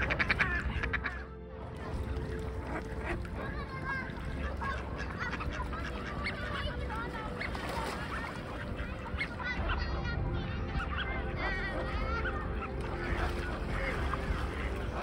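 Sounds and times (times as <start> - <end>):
waterfowl calling: 0.0 - 1.4, 2.1 - 15.0.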